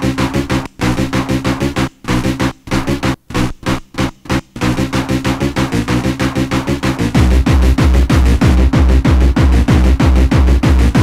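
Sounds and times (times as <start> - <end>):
fast techno music: 0.0 - 11.0
pulsing synth riff: 0.0 - 11.0.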